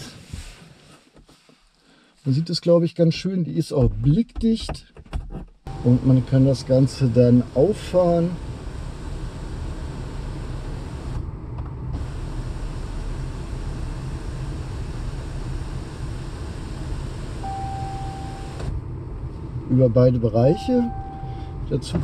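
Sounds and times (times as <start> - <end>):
electric motor humming: 5.7 - 11.2, 12.0 - 17.6.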